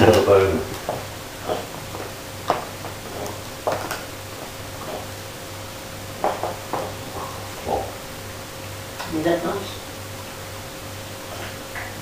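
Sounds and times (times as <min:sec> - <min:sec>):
chew bone knocking on floor: 0:06.2 - 0:07.2.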